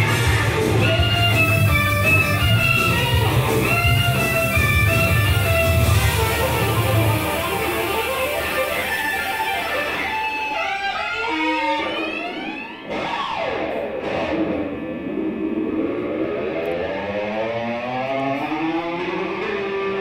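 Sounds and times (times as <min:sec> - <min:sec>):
violin lead line: 0:00.0 - 0:12.8
electric guitar lead: 0:00.0 - 0:20.0.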